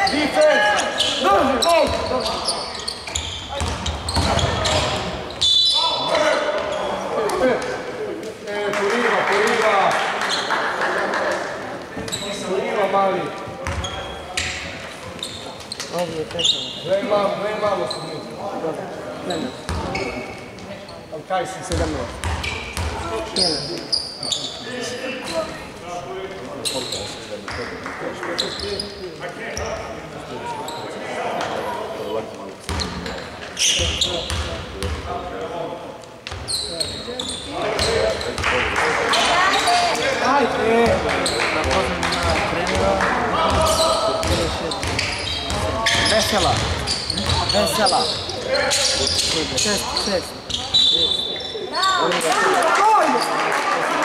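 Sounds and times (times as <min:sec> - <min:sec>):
players and spectators calling out: 0:00.0 - 0:08.0, 0:36.5 - 0:54.0.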